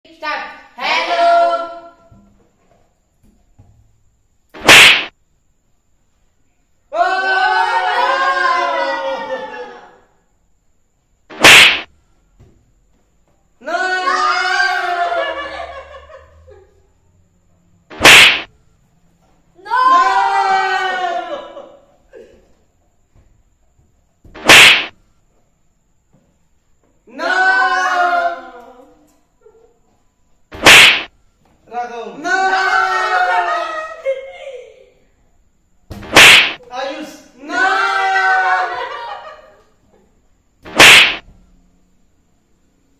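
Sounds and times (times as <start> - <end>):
sharp whip-like swish: 4.6 - 5.1, 11.3 - 11.9, 17.9 - 18.5, 24.4 - 25.0, 30.6 - 31.1, 36.0 - 36.6, 40.7 - 41.2
balloon slapping a head: 4.6 - 5.2, 11.3 - 11.9, 17.9 - 18.5, 24.3 - 25.0, 30.5 - 31.1, 35.9 - 36.6, 40.6 - 41.3.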